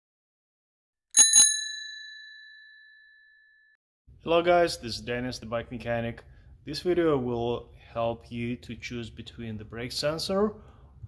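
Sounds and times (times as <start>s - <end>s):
bicycle bell ringing: 1.1s - 3.7s.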